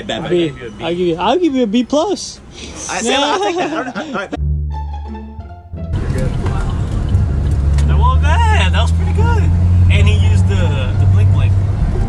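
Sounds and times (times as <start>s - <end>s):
car engine drone: 5.9s - 12.0s.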